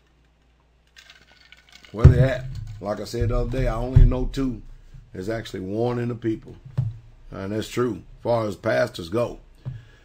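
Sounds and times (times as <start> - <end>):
plastic cup clinking and rattling: 0.9 - 3.6.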